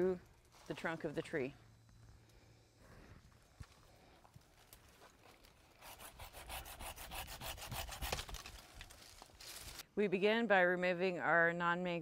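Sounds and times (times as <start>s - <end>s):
rustles and clicks in branches: 3.4s - 5.8s, 8.0s - 9.8s
hand saw cutting wood: 5.8s - 8.5s.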